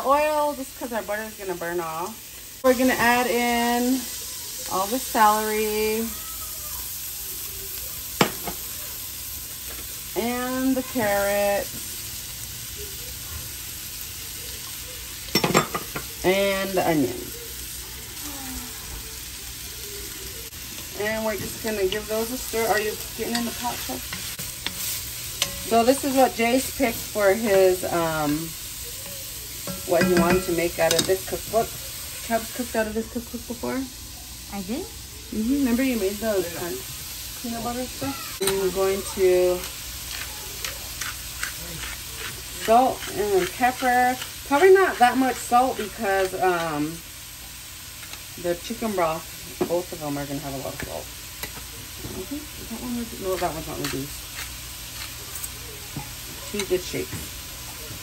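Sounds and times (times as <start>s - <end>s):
vegetables sizzling in a pot: 0.0s - 58.0s
glass bowl clinking: 15.3s - 16.0s
pepper grinder crunching: 39.6s - 46.3s.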